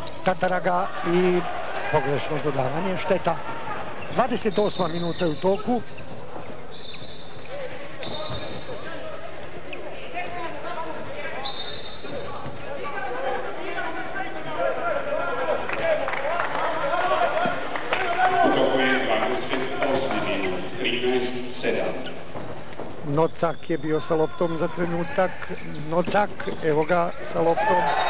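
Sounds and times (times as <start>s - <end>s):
crowd din: 0.0s - 21.2s.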